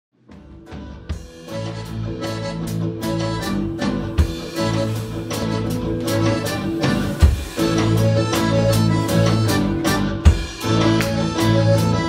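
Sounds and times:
electric guitar: 0.2s - 12.0s
drum kit beat: 0.3s - 12.0s
accordion: 0.4s - 12.0s.

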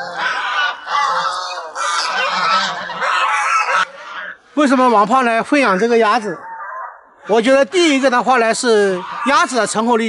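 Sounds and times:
waterfowl calling: 0.0s - 10.0s.

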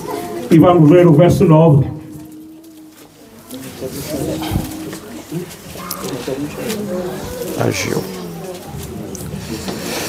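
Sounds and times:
low voices murmuring: 0.0s - 10.0s.

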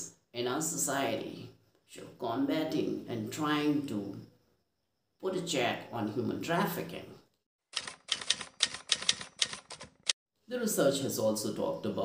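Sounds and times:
typewriter key strikes: 7.8s - 10.1s.

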